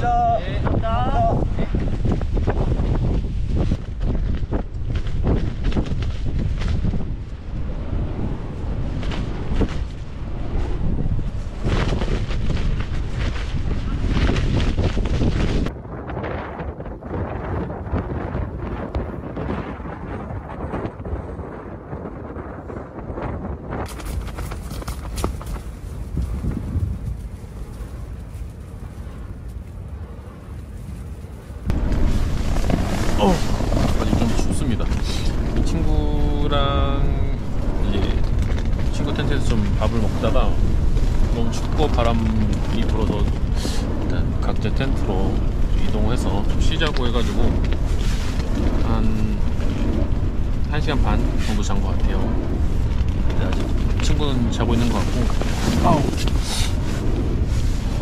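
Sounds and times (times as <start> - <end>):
wind buffeting microphone: 0.0 - 58.0
person's voice: 53.4 - 56.8.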